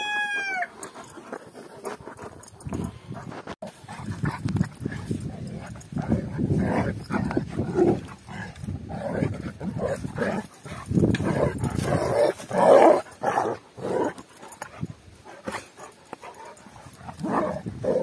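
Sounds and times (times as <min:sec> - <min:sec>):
dogs growling: 0:00.7 - 0:18.0.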